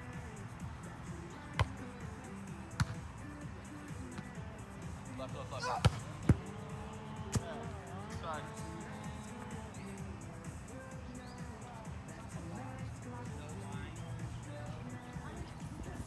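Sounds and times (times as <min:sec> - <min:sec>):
hands slapping volleyball: 0:02.8 - 0:03.0.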